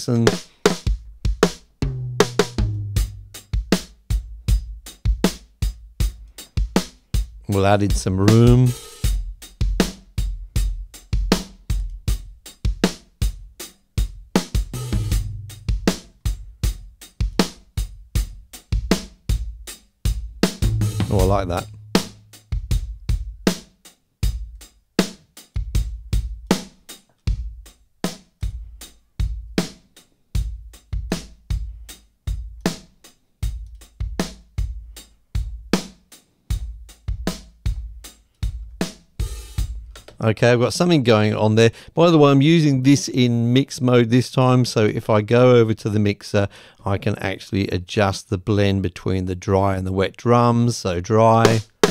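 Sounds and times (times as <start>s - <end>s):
drum kit groove: 0.0s - 51.9s
snare drum hits: 51.5s - 51.9s.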